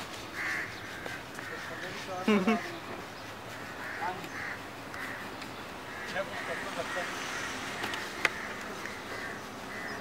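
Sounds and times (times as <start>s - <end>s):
bird calling: 0.0s - 10.0s.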